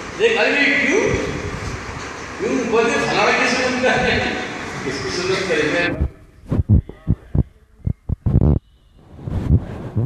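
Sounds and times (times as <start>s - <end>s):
low dull thumps: 5.9s - 8.6s.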